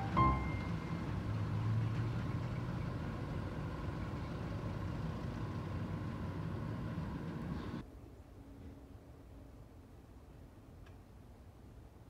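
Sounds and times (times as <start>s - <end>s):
low engine hum: 0.0s - 7.8s
faint background noise: 0.0s - 12.0s.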